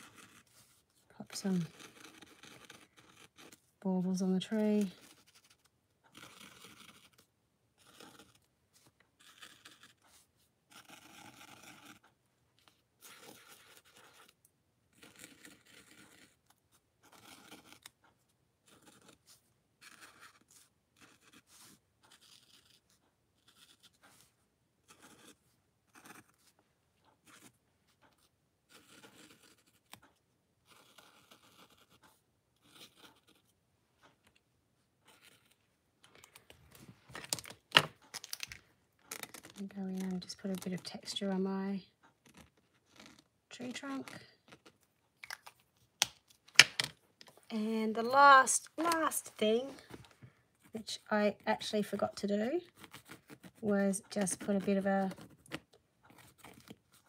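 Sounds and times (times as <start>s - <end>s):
paint marker scratching on paper: 0.0s - 3.6s, 28.2s - 29.9s, 30.7s - 32.0s, 32.6s - 33.5s.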